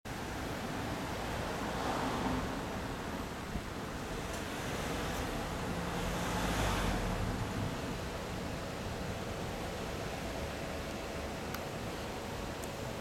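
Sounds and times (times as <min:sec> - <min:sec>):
low rumble and hiss: 0:00.1 - 0:13.0.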